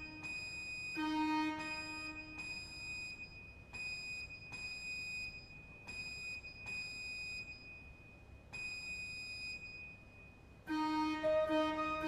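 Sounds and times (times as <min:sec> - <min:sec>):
high organ pipe whistling tone: 0:10.7 - 0:12.0.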